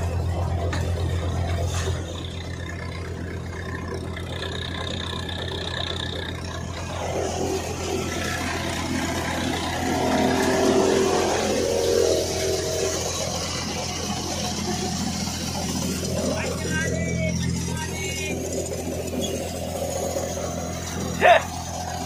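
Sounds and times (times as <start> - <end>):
thresher engine hum: 0.0 - 22.0.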